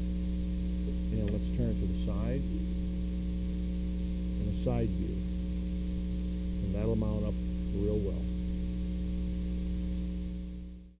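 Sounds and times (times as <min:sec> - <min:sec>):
electrical hum with hiss: 0:00.0 - 0:11.0.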